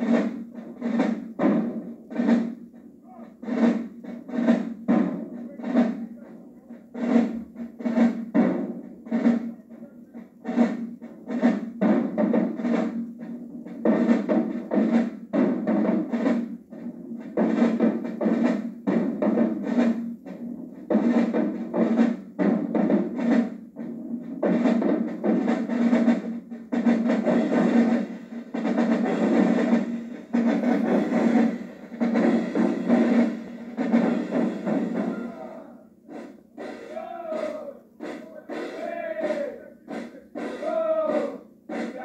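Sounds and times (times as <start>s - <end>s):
marching drumline cadence: 0.0s - 42.0s.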